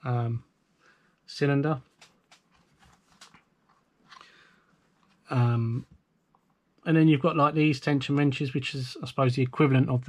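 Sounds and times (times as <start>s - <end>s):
cloth rustling: 1.9s - 5.3s.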